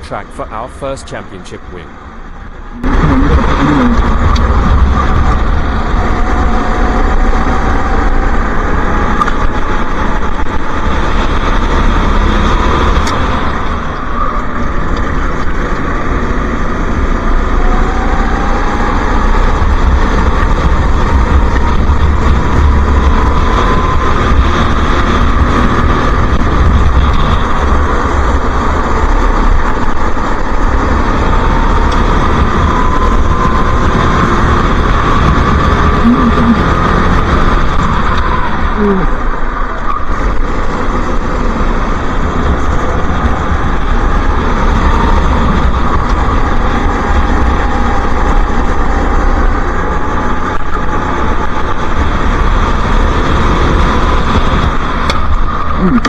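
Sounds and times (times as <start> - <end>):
go-kart engine racing: 0.0 - 56.0
wind buffeting microphone: 2.3 - 56.0.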